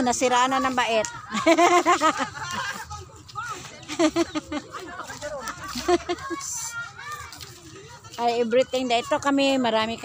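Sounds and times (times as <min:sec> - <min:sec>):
children's voices: 0:04.7 - 0:10.0.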